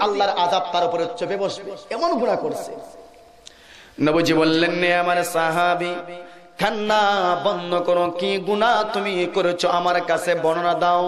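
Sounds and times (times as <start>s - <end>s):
man chanting: 4.0s - 11.0s.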